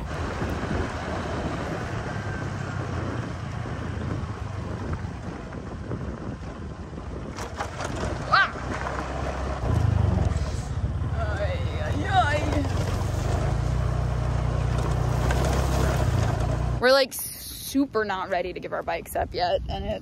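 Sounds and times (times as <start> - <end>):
wind rushing over microphone: 0.0 - 14.2
motor scooter engine running: 0.0 - 16.9.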